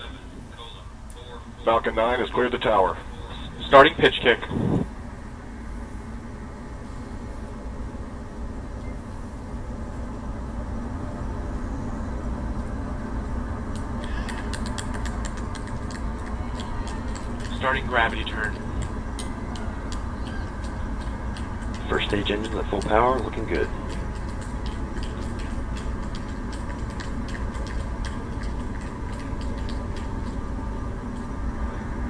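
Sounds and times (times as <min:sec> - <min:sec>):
rocket engine rumble: 0:00.0 - 0:32.0
sharp clicks: 0:13.7 - 0:30.4.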